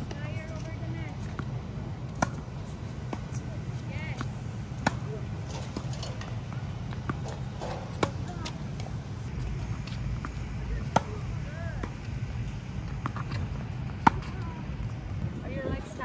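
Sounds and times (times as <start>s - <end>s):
racket hitting tennis ball: 0.0s - 15.0s
tennis ball bouncing: 0.0s - 15.2s.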